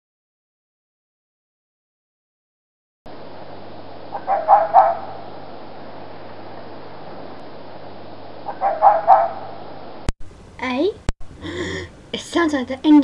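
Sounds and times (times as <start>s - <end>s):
low hum: 3.1s - 13.0s.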